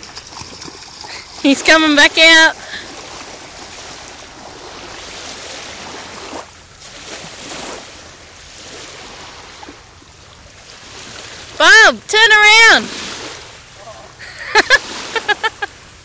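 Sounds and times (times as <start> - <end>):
dog splashing through water: 0.0 - 1.8
waves washing at shoreline: 0.0 - 16.0.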